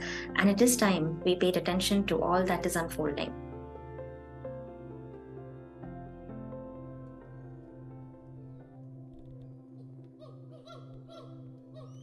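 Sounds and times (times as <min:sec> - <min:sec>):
ambient music drone: 0:00.0 - 0:12.0
gibbon hooting calls: 0:10.2 - 0:12.0.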